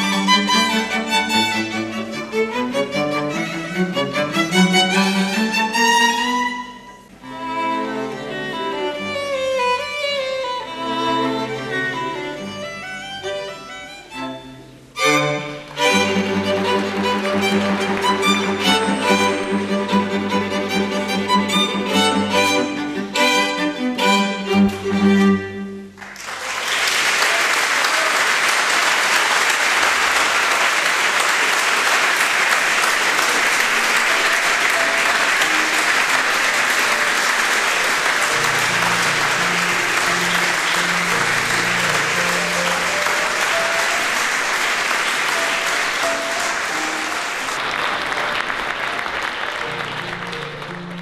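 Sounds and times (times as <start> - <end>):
audience applauding: 15.4 - 22.8, 25.9 - 51.0.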